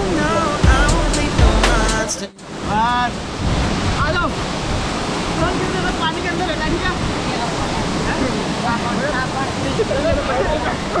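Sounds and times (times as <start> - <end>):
song: 0.0 - 3.2.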